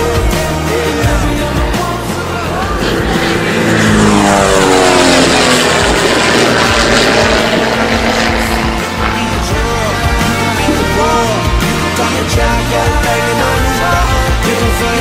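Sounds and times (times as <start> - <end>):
propeller plane flying past: 0.0 - 15.0.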